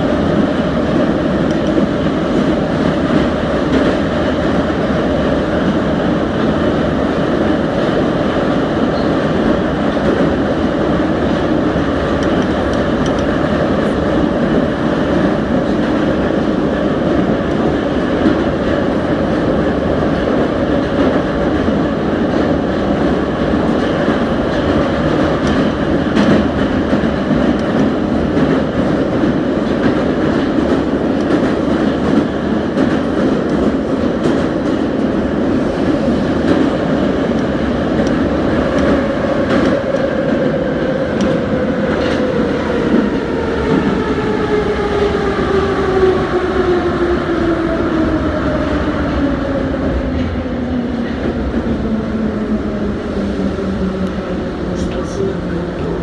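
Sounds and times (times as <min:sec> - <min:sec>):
metro train rumble: 0:00.0 - 0:56.0.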